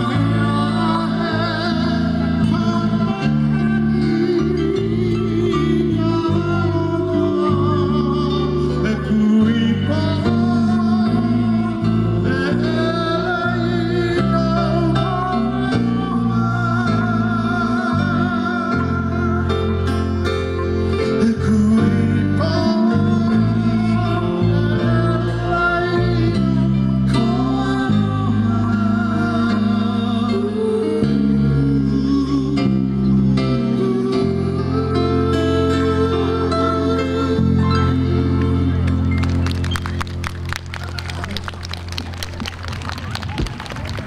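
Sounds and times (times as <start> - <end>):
person singing: 0.0 - 39.1
bass line: 0.0 - 44.0
audience clapping: 38.8 - 44.0.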